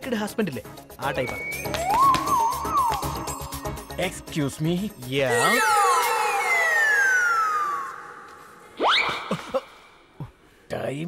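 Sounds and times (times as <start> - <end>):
whistle tone sliding down: 1.0 - 3.8, 5.4 - 9.2.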